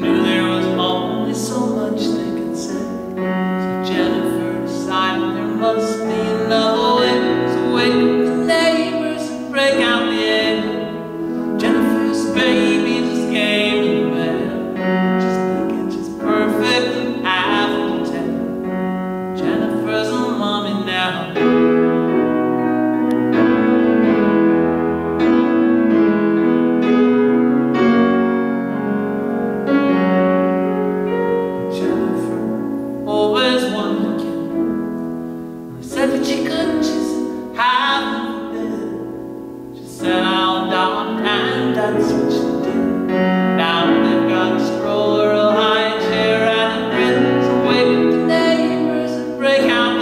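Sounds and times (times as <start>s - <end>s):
man singing: 0.0s - 21.9s, 31.1s - 34.7s, 35.7s - 50.0s
grand piano playing: 0.0s - 50.0s.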